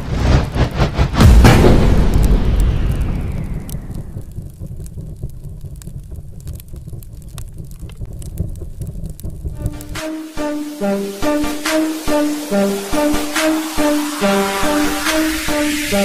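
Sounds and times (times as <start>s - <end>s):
cinematic boom: 0.0s - 10.0s
steady low rumble: 0.0s - 16.0s
faint crackles: 0.1s - 10.5s
melodic music: 9.6s - 16.0s.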